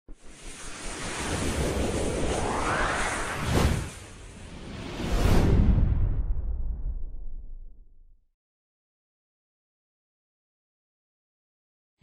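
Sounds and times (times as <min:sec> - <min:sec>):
rushing whoosh: 0:00.3 - 0:06.6.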